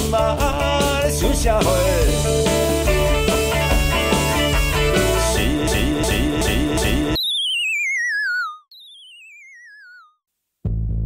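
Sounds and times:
rock band with bass guitar: 0.0 - 7.2
rock music: 0.0 - 7.2
falling electronic tone: 3.1 - 10.2.

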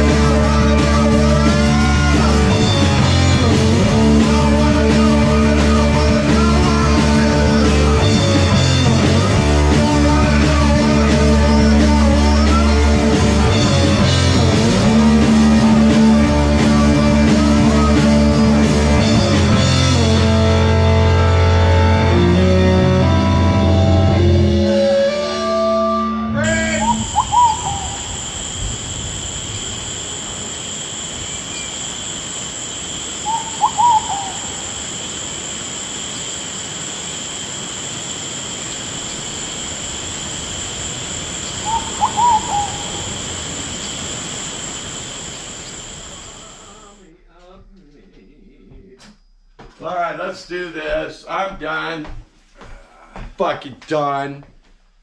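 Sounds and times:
drums: 0.0 - 24.6, 26.4 - 32.5
electric guitars holding chords: 0.0 - 35.4
high insect chorus: 26.4 - 47.0.

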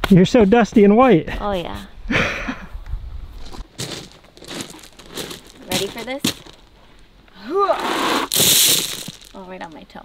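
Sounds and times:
boots crunching on gravel: 3.5 - 6.8, 8.3 - 9.8.

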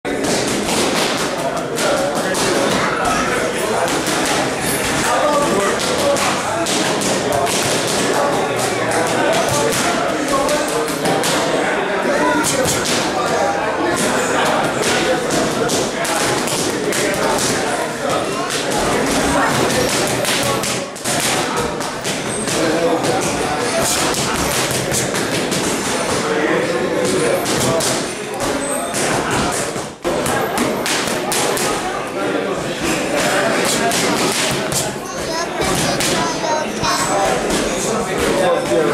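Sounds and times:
voices: 0.1 - 38.9.

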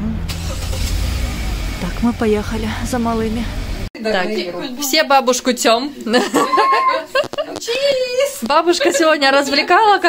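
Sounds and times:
car interior road noise: 0.0 - 3.9.

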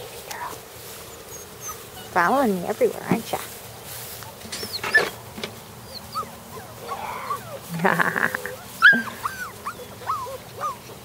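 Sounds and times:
puppy whimpering: 1.3 - 2.2, 4.6 - 5.2, 5.8 - 10.9.

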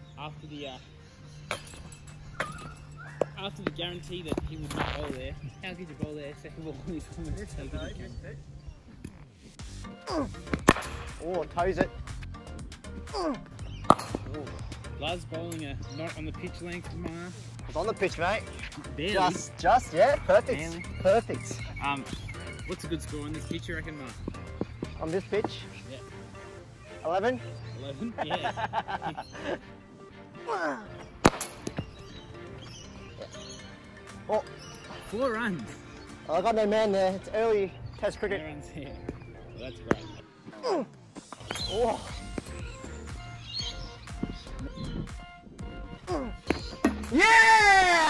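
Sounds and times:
background music: 0.0 - 48.0
cricket bat striking ball: 10.5 - 11.2, 31.2 - 32.1, 46.5 - 47.2.

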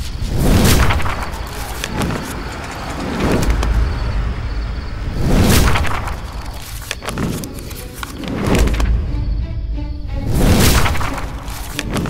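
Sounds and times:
deep rumble: 0.0 - 7.7
whooshes: 0.0 - 8.9.

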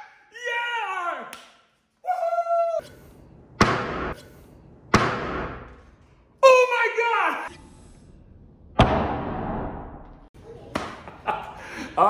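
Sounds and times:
man shouting excitedly: 0.0 - 1.3, 6.4 - 7.5
man laughing: 11.0 - 12.0.

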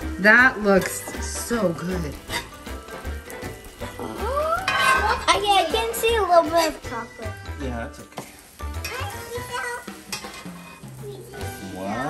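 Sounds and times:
background music: 0.0 - 12.0
toast sizzling on a griddle: 0.0 - 12.0
metal spatula scraping a pan: 0.7 - 6.9, 10.0 - 10.9.

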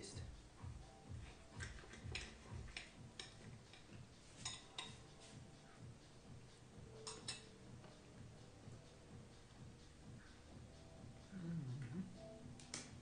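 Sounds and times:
cutlery clicking on plate: 1.6 - 5.0, 7.0 - 7.6.

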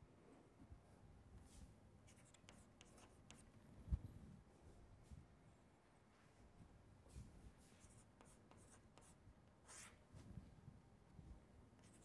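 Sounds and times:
chalk scratching on chalkboard: 2.1 - 3.4, 7.6 - 10.0.

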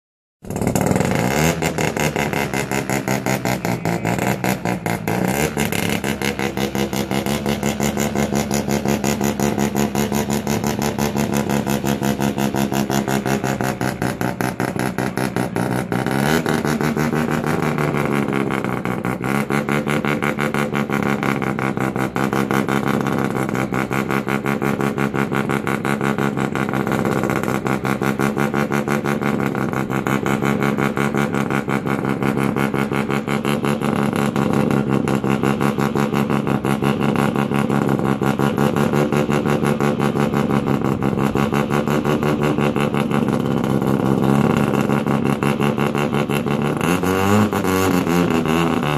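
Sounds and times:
rotary engine idling and revving: 0.4 - 48.9.

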